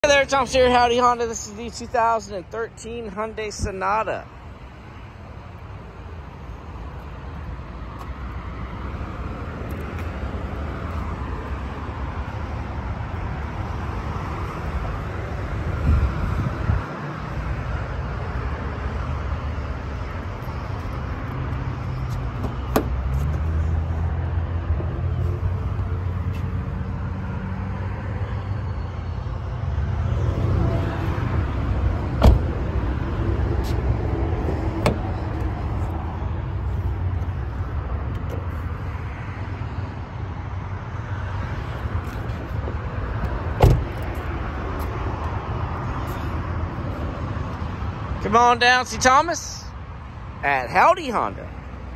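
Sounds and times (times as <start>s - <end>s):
car door knocks: 22.4s - 23.0s, 32.2s - 32.6s, 34.8s - 35.1s, 43.6s - 44.0s.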